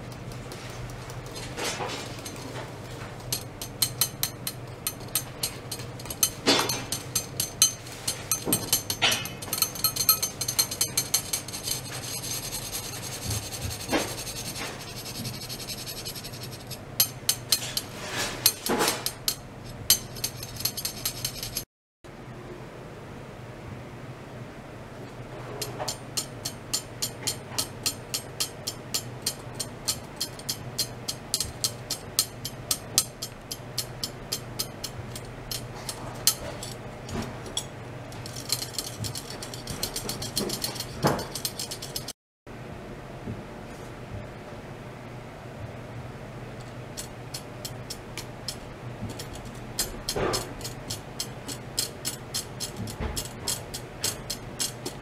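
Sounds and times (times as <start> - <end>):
rubbing and scraping handling noise: 0.0 - 21.7, 25.3 - 42.1
steady low hum: 0.0 - 55.0
sharp scrape: 10.9 - 16.8, 17.6 - 19.1.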